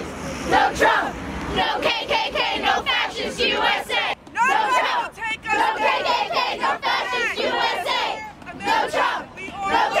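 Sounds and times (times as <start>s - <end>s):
crowd shouting a chant: 0.4s - 10.0s.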